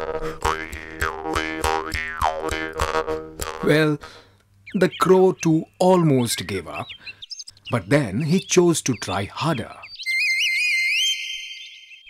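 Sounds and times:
high wavering whistle: 0:10.0 - 0:12.0.

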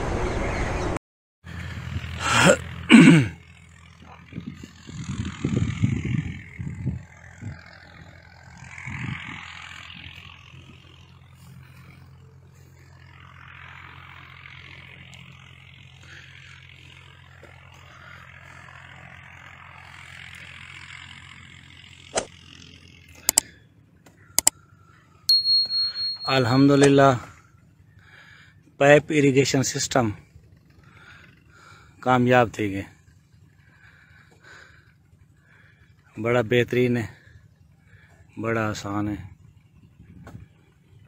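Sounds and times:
low mechanical hum: 0:01.5 - 0:41.0
low rumbling gusts: 0:04.3 - 0:09.6
sharp click: 0:24.4 - 0:24.6.

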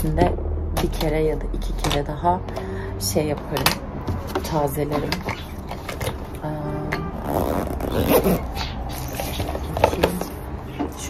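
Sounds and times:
zipper being drawn: 0:07.2 - 0:09.2.

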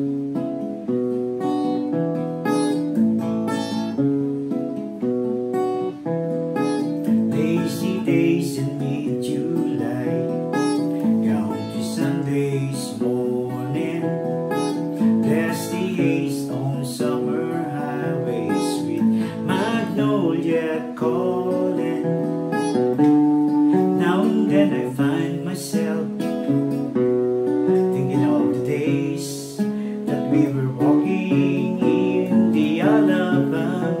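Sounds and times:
acoustic guitar playing: 0:00.0 - 0:34.0.

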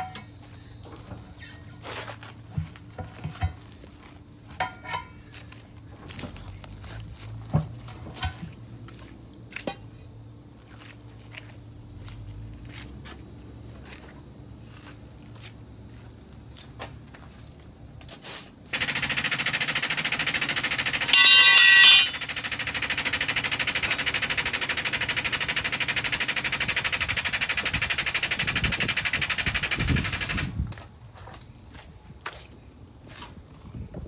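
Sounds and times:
loud rapid mechanical rattle: 0:18.7 - 0:30.6.

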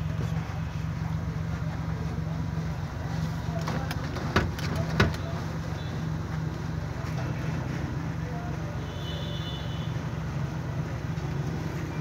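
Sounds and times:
van engine idling: 0:00.0 - 0:12.0
sharp clicks and knocks: 0:03.6 - 0:05.2.

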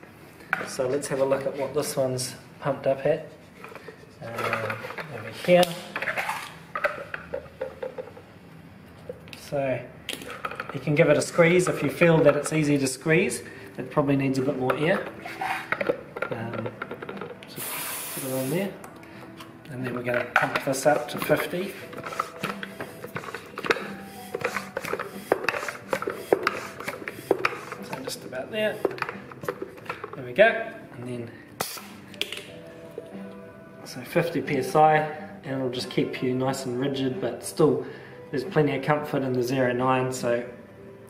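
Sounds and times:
low air hiss: 0:17.4 - 0:21.9
tyre pump strokes clicking: 0:20.9 - 0:30.1.

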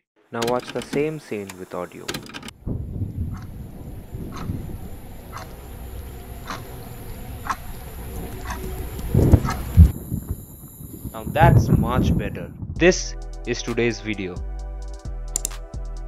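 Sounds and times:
steady low rumble: 0:02.5 - 0:13.6
loud low thumps: 0:02.6 - 0:10.5, 0:11.4 - 0:13.2
watch ticking: 0:03.3 - 0:03.6, 0:04.2 - 0:10.0
high hiss: 0:03.4 - 0:12.2.

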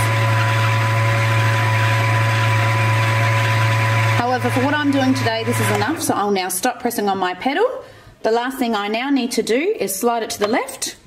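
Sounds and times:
sewing machine motor humming: 0:00.0 - 0:06.1.

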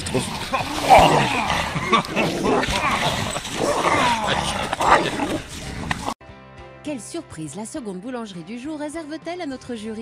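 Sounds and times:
person's voice: 0:03.8 - 0:05.8.

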